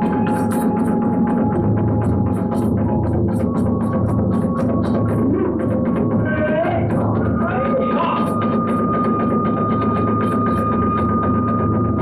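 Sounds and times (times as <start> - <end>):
fast drum beats: 0.0 - 12.0.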